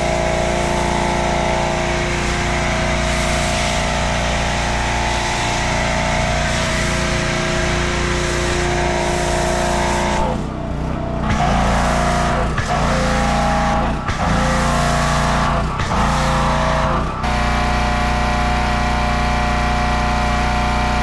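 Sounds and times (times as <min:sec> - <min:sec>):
pressure washer running: 0:00.0 - 0:21.0.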